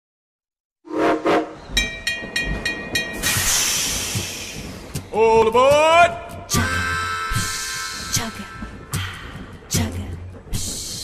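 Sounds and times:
train whistle toots: 0.9s - 1.6s
steam hissing: 3.1s - 5.2s.

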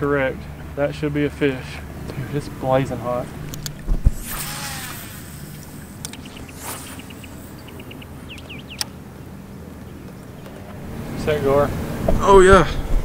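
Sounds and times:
low steady hum: 0.0s - 11.1s
faint bird chirps: 5.0s - 9.2s.

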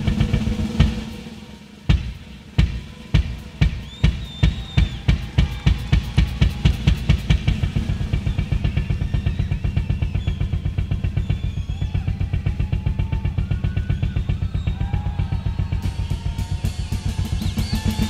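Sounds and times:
rock drum kit playing: 0.0s - 18.0s.

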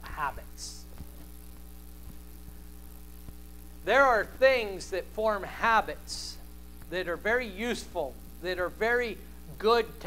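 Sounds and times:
man speaking: 0.0s - 0.9s, 3.8s - 10.0s
electrical mains hum: 0.0s - 10.0s.

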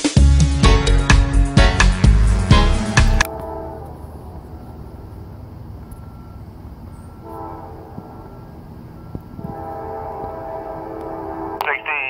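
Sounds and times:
distant locomotive horn blasts: 1.6s - 11.7s.

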